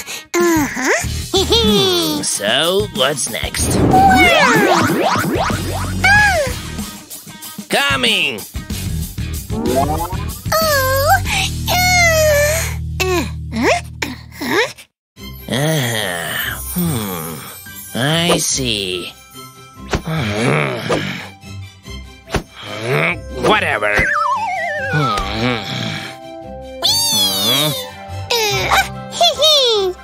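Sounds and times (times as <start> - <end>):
wordless vocal sounds: 3.2 - 6.7
cartoon vocal sounds sliding in pitch: 3.6 - 6.6, 9.5 - 10.8, 24.0 - 25.7
wobbly falling whistle effect: 3.6 - 6.7, 9.5 - 10.4, 24.0 - 25.3
background music: 9.3 - 11.5, 15.2 - 30.0.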